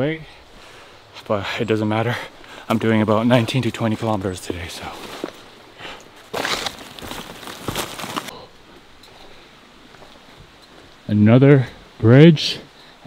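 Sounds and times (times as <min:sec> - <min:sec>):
footsteps on forest trail: 0:02.6 - 0:11.1
jacket and backpack rustling: 0:03.9 - 0:08.3.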